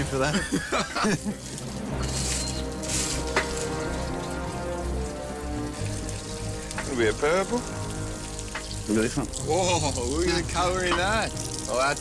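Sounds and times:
hose water splashing on gravel: 0.0 - 12.0.

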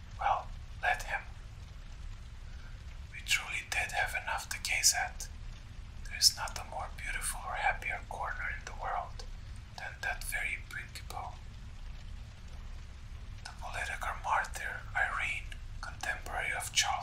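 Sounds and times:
low rumble of fire: 0.0 - 17.0
person whispering: 0.1 - 1.4, 3.2 - 5.3, 6.1 - 11.5, 13.5 - 17.0.

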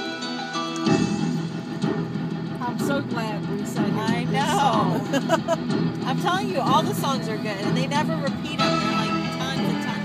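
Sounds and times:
radio music with bass line: 0.9 - 10.0.

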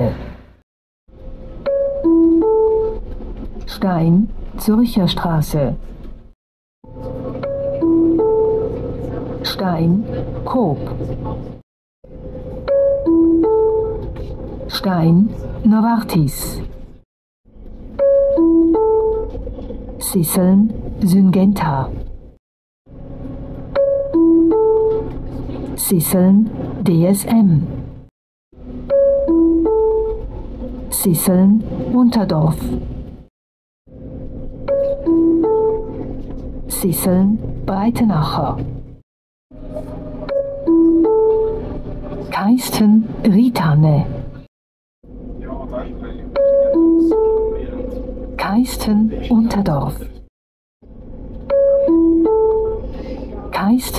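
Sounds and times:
low steady rumble: 6.9 - 33.2, 33.9 - 39.0
three-note announcement chime: 7.0 - 9.4, 46.4 - 48.1.

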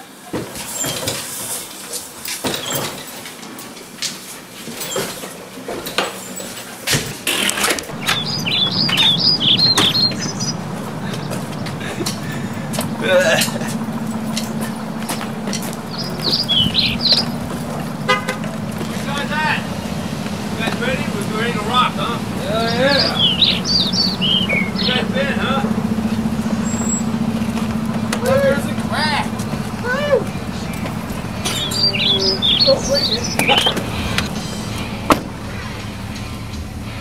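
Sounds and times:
scattered knocks: 7.8 - 36.3
steady low hum: 7.8 - 37.0
people whooping and shrieking: 28.1 - 34.0.

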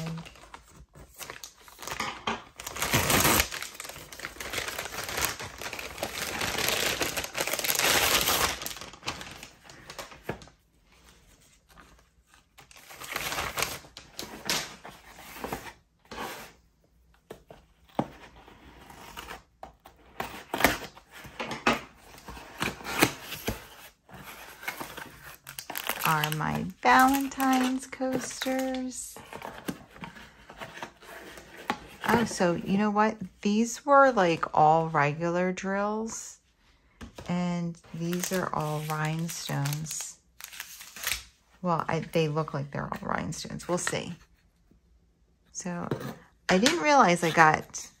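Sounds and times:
mailer rustling and crinkling: 0.0 - 15.8, 22.1 - 32.4.

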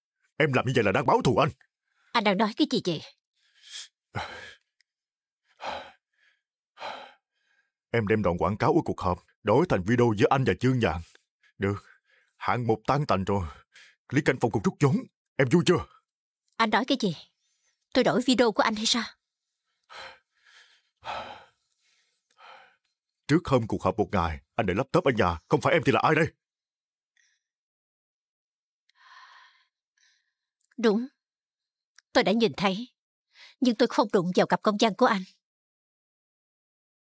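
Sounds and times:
man breathing and sighing: 3.4 - 4.8, 5.4 - 7.7, 19.7 - 23.0.

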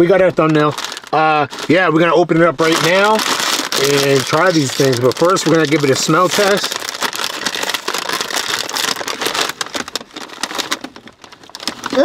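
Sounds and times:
plastic snack bag crinkling: 0.0 - 12.0.

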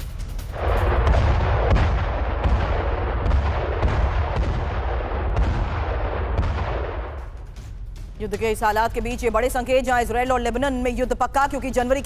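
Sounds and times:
gunfire cracks: 0.0 - 7.8
deep continuous explosion rumble: 0.0 - 10.6.

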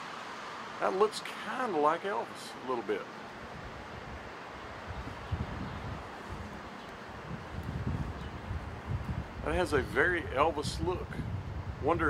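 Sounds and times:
steady outdoor hiss: 0.0 - 12.0
wind buffeting microphone: 3.4 - 12.0.

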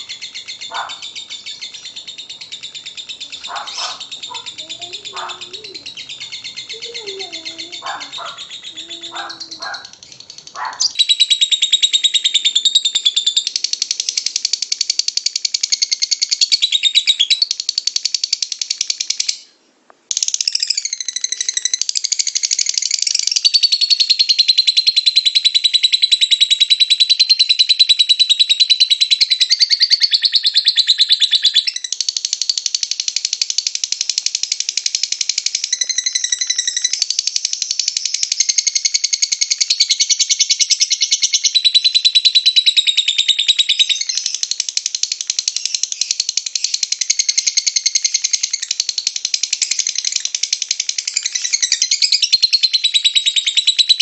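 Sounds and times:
lovebird high-pitched trill: 0.0 - 19.5, 20.2 - 32.6, 35.3 - 44.6, 45.4 - 54.0.

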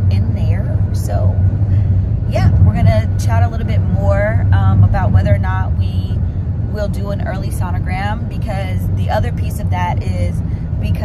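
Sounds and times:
woman speaking: 0.0 - 1.4, 2.3 - 11.0
car cabin rumble: 0.0 - 11.0.

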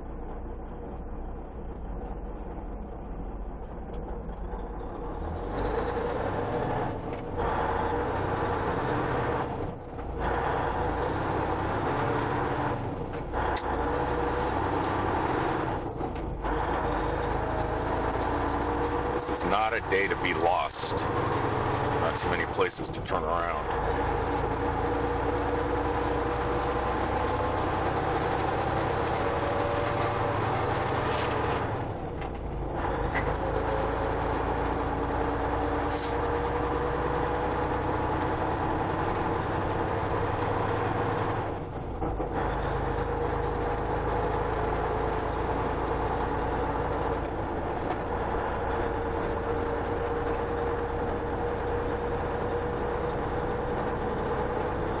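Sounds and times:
vehicle engine: 0.0 - 55.0.

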